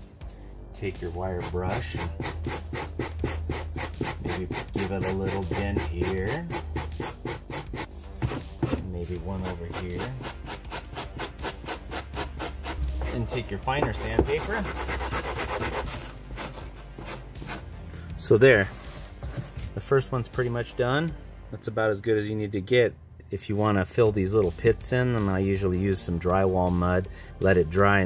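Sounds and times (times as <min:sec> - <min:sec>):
wire brush scrubbing foam: 0:01.3 - 0:07.9, 0:08.8 - 0:17.6.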